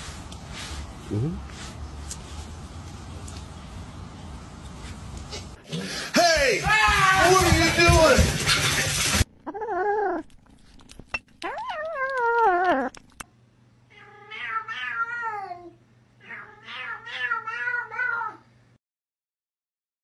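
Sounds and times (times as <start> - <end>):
cats meowing: 13.9 - 18.4.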